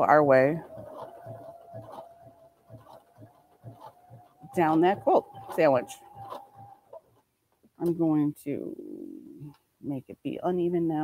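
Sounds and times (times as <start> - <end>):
sewing machine humming: 0.0 - 7.2
needle strokes: 0.0 - 7.3.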